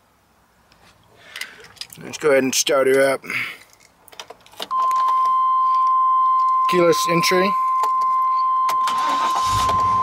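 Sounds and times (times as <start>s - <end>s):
light clicks and rustling: 2.9s - 5.9s.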